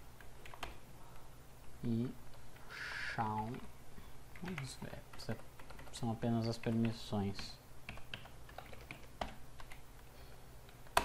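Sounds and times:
computer keyboard typing: 0.2s - 0.8s, 4.3s - 10.0s, 10.7s - 11.0s.

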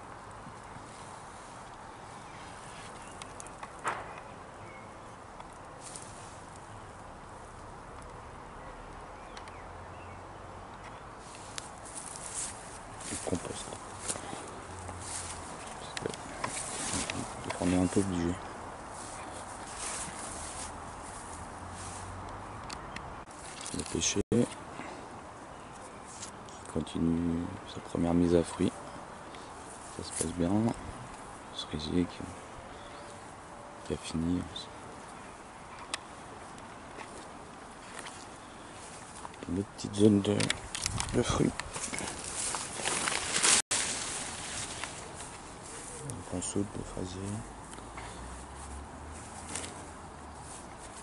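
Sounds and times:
foliage rustling: 0.0s - 51.0s
steady background hiss: 0.0s - 51.0s
light crunches: 11.2s - 22.1s, 22.7s - 24.6s, 35.8s - 51.0s
footsteps: 11.2s - 22.4s, 40.5s - 46.1s.

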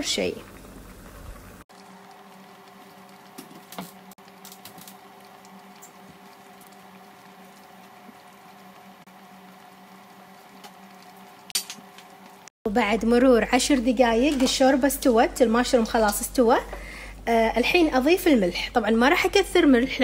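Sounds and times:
soup bubbling in a pot: 0.0s - 12.5s
low steady hum: 4.2s - 20.0s.

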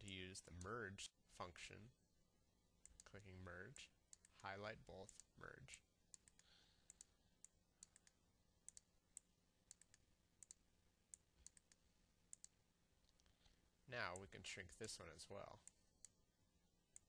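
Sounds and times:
low room hiss: 0.0s - 17.0s.

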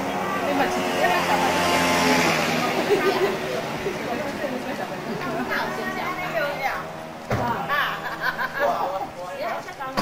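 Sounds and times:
car engine humming: 0.0s - 10.0s
people's voices: 0.0s - 10.0s.

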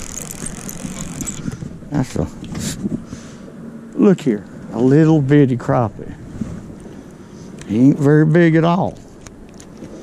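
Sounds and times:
fishing reel ticking whir: 0.0s - 1.6s.

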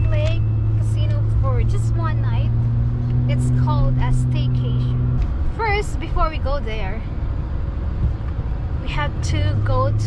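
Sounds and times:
car cabin engine and road rumble: 0.0s - 10.0s.

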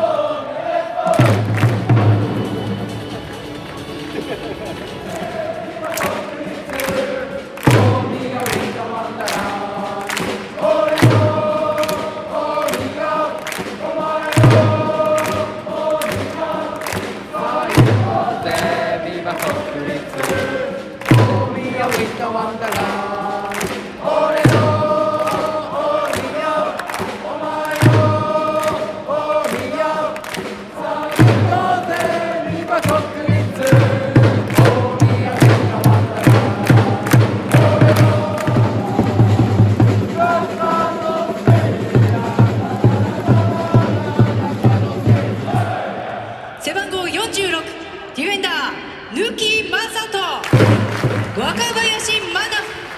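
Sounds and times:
crowd chanting in unison: 0.0s - 49.2s
steady drumbeat: 1.0s - 46.2s, 50.5s - 52.2s.

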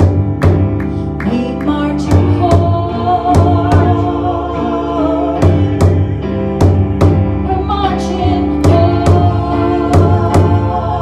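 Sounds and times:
steady drum beat: 0.0s - 1.0s, 2.1s - 4.2s, 5.4s - 7.5s, 8.4s - 10.8s
keyboard: 0.0s - 11.0s
woman singing: 1.2s - 6.0s, 7.4s - 11.0s.

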